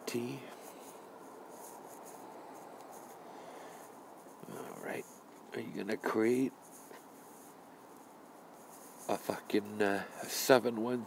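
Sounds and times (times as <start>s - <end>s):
outdoor background noise: 0.0s - 11.0s
scratchy rustling: 0.5s - 11.0s.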